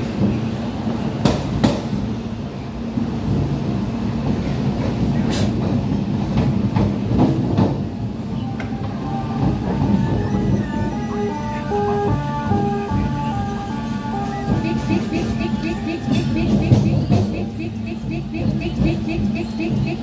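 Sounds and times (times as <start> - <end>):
train rumbling from inside carriage: 0.0 - 20.0
wheels clacking over rail joints: 4.2 - 20.0.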